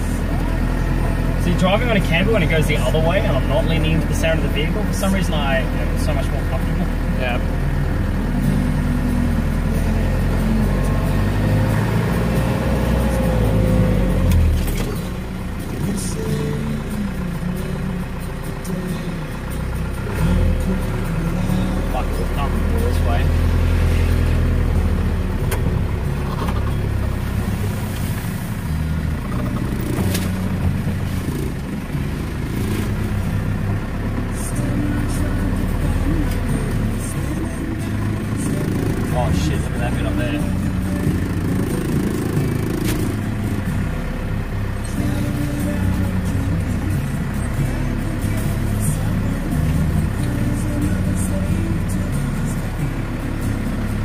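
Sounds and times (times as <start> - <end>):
knocks and rattles of vehicle: 0.0 - 54.0
vehicle engine running low: 0.0 - 54.0.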